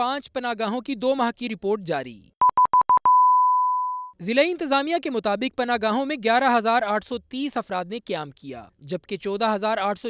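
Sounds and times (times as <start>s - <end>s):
electronic beeps: 2.4s - 4.2s.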